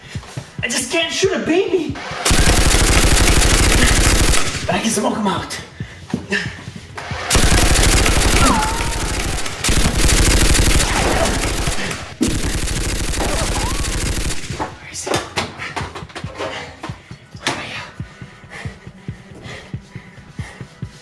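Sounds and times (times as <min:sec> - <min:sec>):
automatic gunfire: 0:02.3 - 0:04.8, 0:07.3 - 0:14.8
person crying out: 0:08.3 - 0:09.5, 0:13.2 - 0:13.9.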